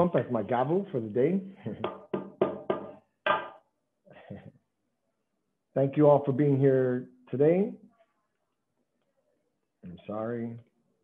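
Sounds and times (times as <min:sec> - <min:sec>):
bicycle pump knocking on desk: 0:01.9 - 0:03.5.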